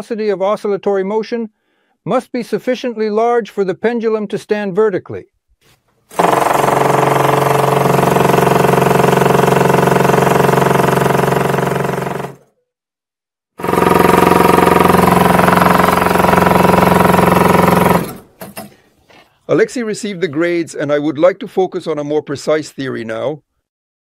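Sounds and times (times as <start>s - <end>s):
vibrator rapid mechanical rattle: 6.1s - 12.4s, 13.6s - 18.7s.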